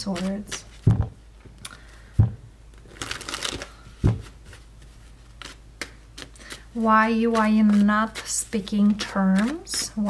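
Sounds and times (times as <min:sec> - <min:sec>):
soft thump: 0:02.2 - 0:02.5, 0:04.0 - 0:04.3
cards being shuffled: 0:02.8 - 0:10.0.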